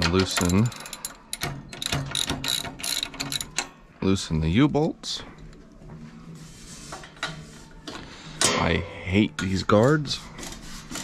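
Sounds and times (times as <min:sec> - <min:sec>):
socket ratchet clicking: 0:00.0 - 0:03.7.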